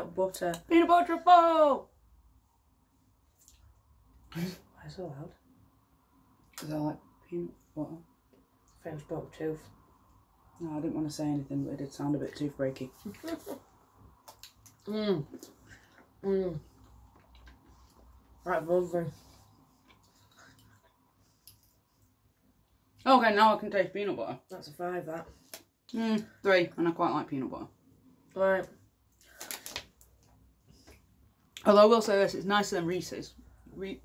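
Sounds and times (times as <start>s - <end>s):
person speaking: 0.0s - 1.9s
faint clicks and rustles: 28.6s - 31.1s.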